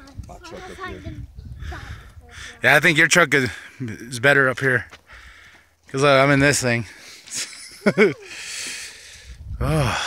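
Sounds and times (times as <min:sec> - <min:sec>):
person's wordless vocal sounds: 0:09.5 - 0:10.0.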